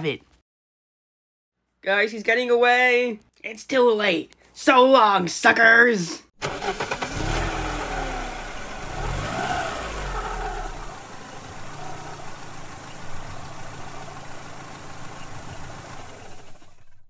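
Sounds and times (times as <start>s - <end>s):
car engine cranking: 6.4s - 17.0s.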